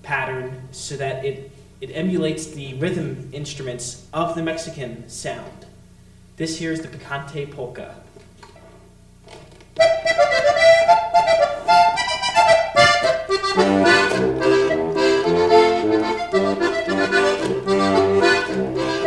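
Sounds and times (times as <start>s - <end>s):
accordion bass pattern: 9.8s - 19.0s
button accordion polka: 9.8s - 19.0s.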